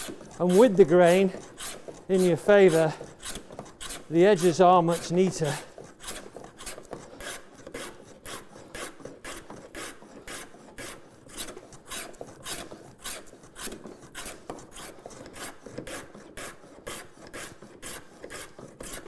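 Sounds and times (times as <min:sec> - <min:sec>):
plane scraping wood: 0:00.0 - 0:19.0.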